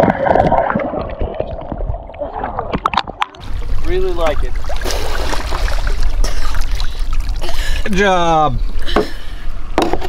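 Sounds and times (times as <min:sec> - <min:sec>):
water splashing and sloshing: 0:00.0 - 0:10.0.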